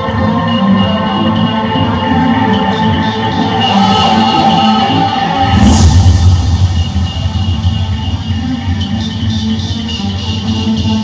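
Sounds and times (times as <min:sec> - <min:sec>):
trap music with heavy bass: 0:00.0 - 0:11.0.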